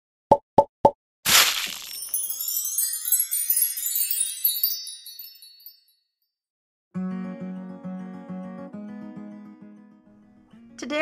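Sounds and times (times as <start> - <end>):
splashy splat: 1.3 - 2.1.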